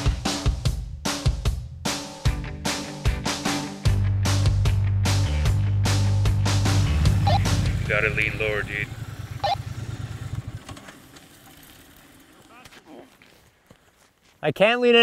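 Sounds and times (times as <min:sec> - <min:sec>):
background music: 0:00.0 - 0:09.0
motorcycle engine running: 0:06.0 - 0:12.7.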